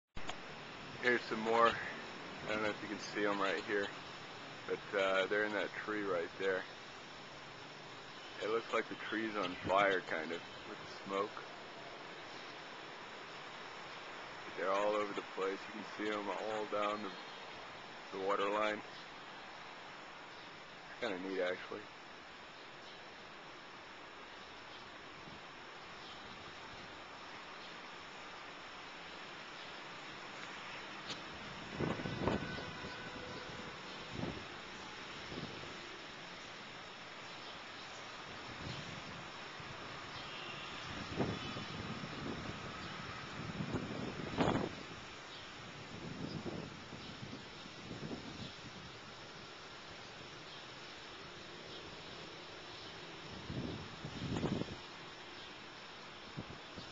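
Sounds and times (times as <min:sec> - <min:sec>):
insect swarm buzzing: 0:00.6 - 0:08.4, 0:21.8 - 0:56.9.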